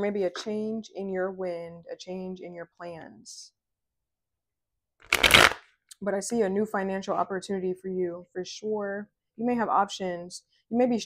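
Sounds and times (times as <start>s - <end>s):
cards being shuffled: 5.0s - 5.6s.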